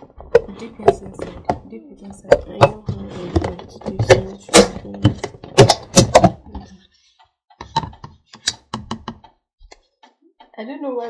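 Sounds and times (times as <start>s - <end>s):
plastic bowl knocking on container: 0.3s - 6.7s.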